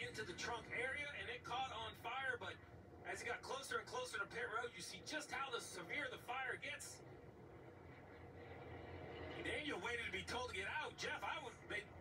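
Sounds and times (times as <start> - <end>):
man speaking on television: 0.0 - 7.1, 9.2 - 12.0
low steady rumble: 0.0 - 12.0.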